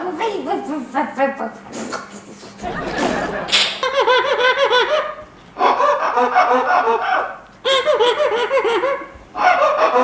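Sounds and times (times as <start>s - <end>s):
man laughing: 2.6s - 5.2s.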